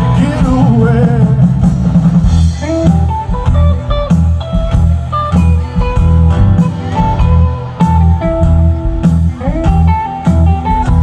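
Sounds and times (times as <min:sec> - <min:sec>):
bass and drums: 0:00.0 - 0:11.0
lead guitar bent notes: 0:00.0 - 0:11.0.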